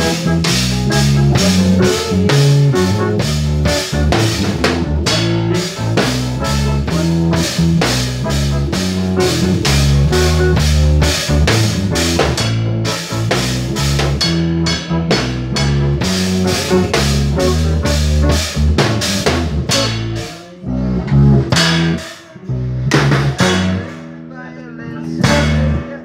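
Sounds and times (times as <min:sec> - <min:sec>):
drum kit beat: 0:00.0 - 0:26.0
electric guitars: 0:00.0 - 0:26.0
sustained low notes: 0:00.0 - 0:26.0.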